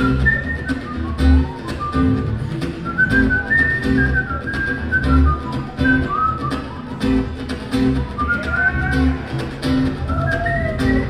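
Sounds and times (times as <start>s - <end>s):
drums and bass beat: 0.0s - 11.0s.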